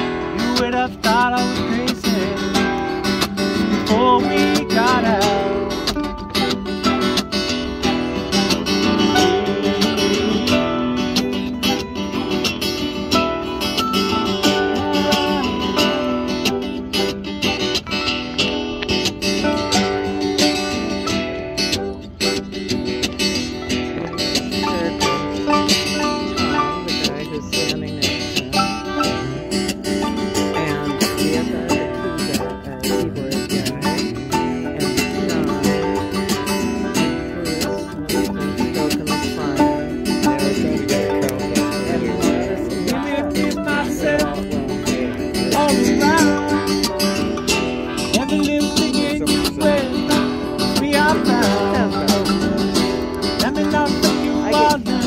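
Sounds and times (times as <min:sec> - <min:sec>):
acoustic guitars strummed: 0:00.0 - 0:55.0
mandolin strummed: 0:00.0 - 0:55.0.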